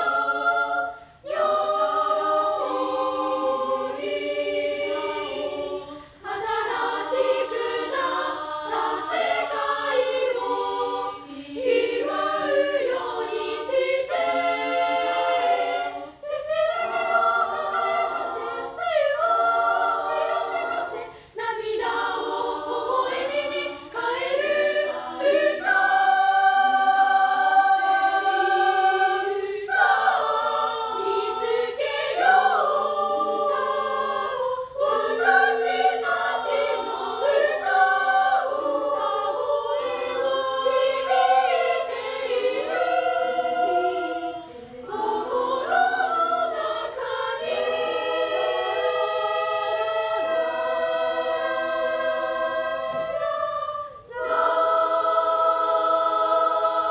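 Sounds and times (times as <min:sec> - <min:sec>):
girls' choir singing: 0:00.0 - 0:56.9.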